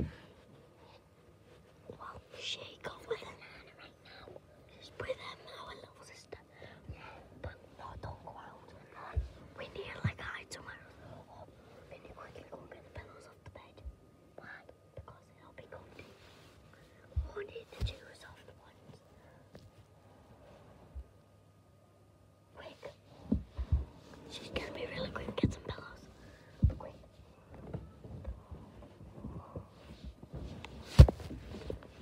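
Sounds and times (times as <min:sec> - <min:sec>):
person whispering: 0:01.9 - 0:16.2, 0:17.2 - 0:19.1, 0:22.5 - 0:23.0, 0:24.2 - 0:27.1
soft low thumps: 0:09.0 - 0:10.3, 0:17.1 - 0:18.1, 0:23.1 - 0:32.0.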